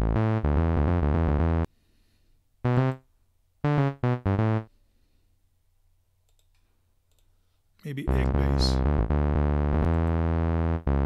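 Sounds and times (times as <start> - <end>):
synthesizer bass loop: 0.0 - 1.6, 8.1 - 11.0
faint computer mouse clicks: 6.3 - 7.3.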